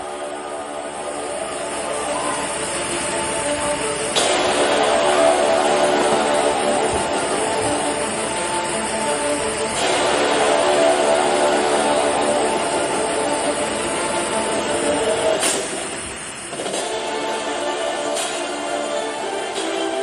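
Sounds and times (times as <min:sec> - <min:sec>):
background music with held tones: 0:00.0 - 0:20.0.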